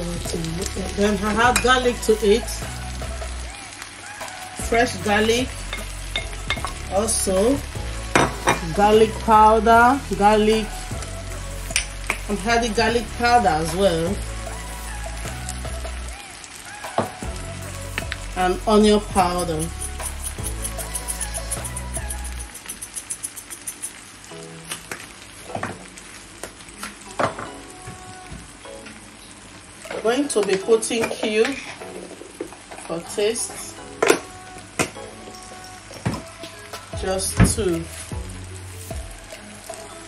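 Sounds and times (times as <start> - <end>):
faint background music: 0.0 - 40.0
onions sizzling in a pan: 0.0 - 40.0.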